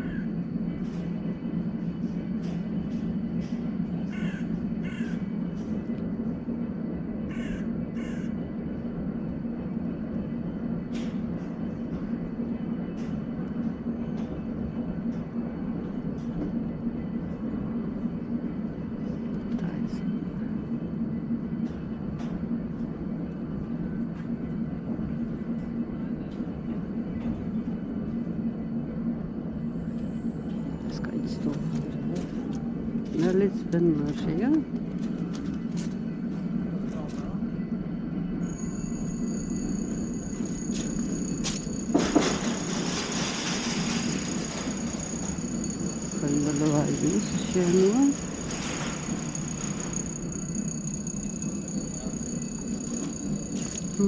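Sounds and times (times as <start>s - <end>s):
steady low hum: 0.0s - 54.0s
crows cawing: 4.1s - 5.2s, 7.3s - 8.3s.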